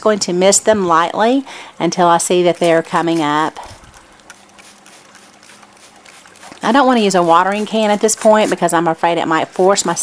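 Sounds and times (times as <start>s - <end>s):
spray bottle misting hiss: 2.3s - 8.7s.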